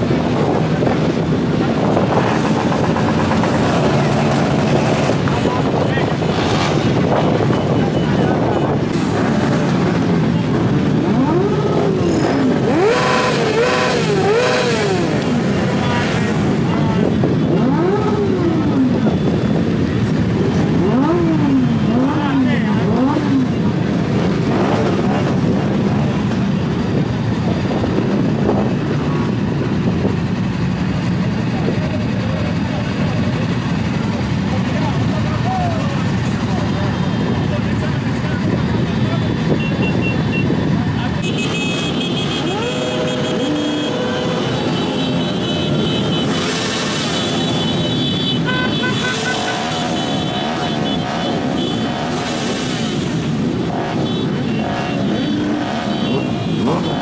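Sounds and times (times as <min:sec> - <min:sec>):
crowd voices: 0:00.0 - 0:57.0
motorcycle engines idling and revving: 0:00.0 - 0:57.0.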